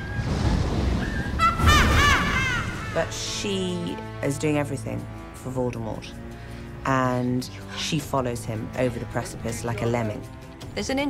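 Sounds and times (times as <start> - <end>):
film music: 0.0 - 11.0
woman cackling: 1.4 - 3.0.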